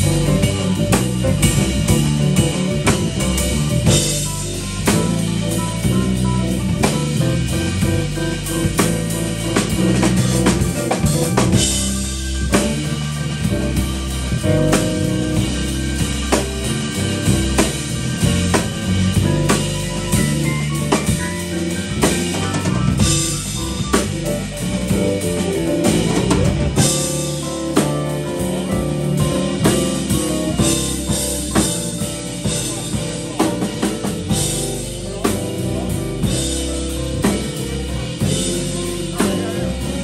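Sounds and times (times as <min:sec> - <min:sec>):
drum kit steady beat: 0:00.0 - 0:40.0
electric bass: 0:00.0 - 0:40.0
keyboards: 0:00.0 - 0:40.0.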